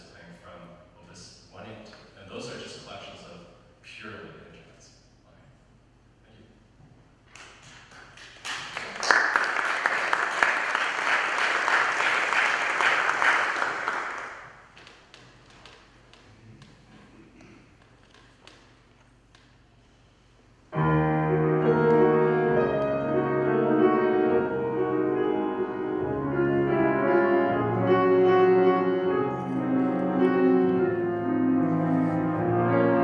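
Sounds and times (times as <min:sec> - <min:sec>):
audience applauding: 0:07.4 - 0:14.7
slow classical piano piece: 0:20.7 - 0:33.0.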